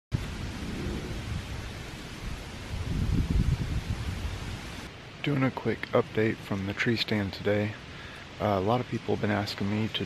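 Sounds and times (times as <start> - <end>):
wind buffeting microphone: 0.1 - 4.9
wind through trees: 0.1 - 10.0.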